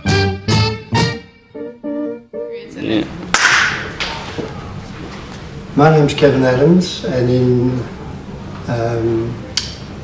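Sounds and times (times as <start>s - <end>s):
hand clap: 3.3s - 4.2s.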